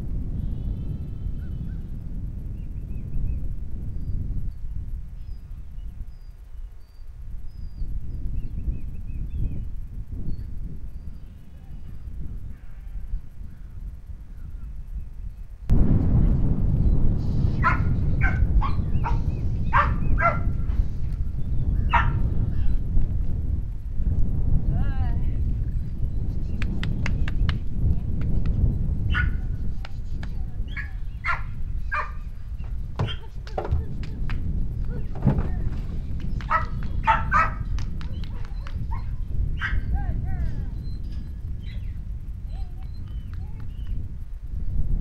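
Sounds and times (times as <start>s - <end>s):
steady low rumble: 0.0s - 45.0s
dog yelping: 17.6s - 20.5s, 21.9s - 22.8s, 29.1s - 29.4s, 36.5s - 39.9s
dog barking: 17.6s - 20.6s, 21.9s - 22.2s, 29.1s - 29.5s, 30.7s - 32.2s, 36.5s - 39.9s.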